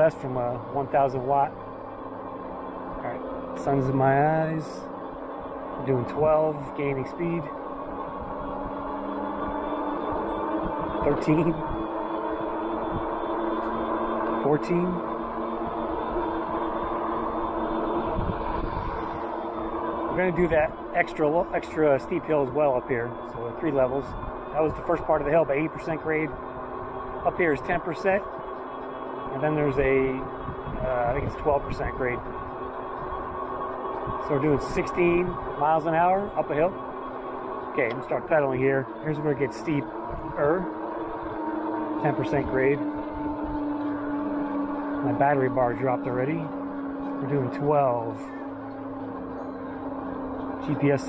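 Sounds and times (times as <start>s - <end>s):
electric motor humming: 0.0s - 51.0s
tyres rumbling: 0.0s - 51.0s
wind noise: 17.6s - 19.3s, 29.8s - 34.2s.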